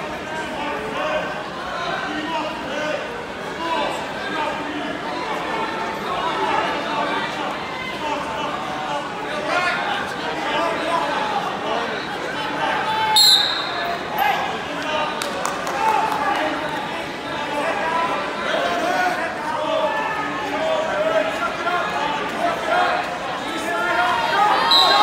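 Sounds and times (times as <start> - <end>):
voices echoing in gym: 0.0 - 25.0.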